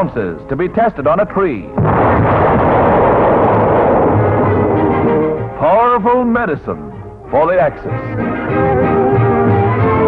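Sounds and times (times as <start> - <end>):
explosion blast rush: 1.8 - 5.6
faint music: 4.3 - 10.0.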